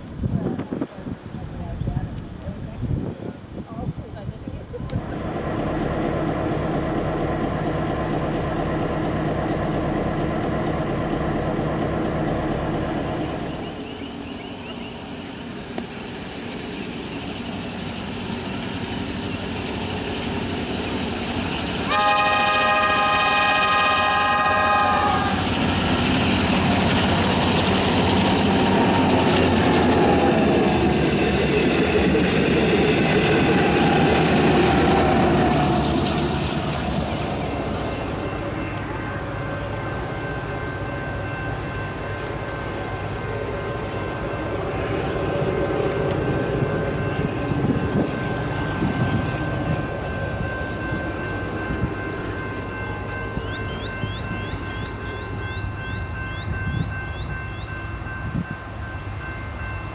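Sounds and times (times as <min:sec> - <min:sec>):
diesel locomotive passing: 0:00.0 - 0:59.9
engine idling: 0:05.0 - 0:13.6
locomotive multi-note horn: 0:21.9 - 0:25.6.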